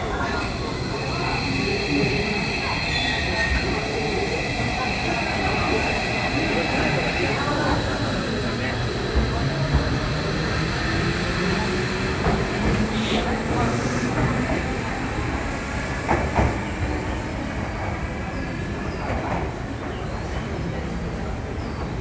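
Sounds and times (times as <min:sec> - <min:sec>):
electric train pulling out: 0:00.0 - 0:16.9.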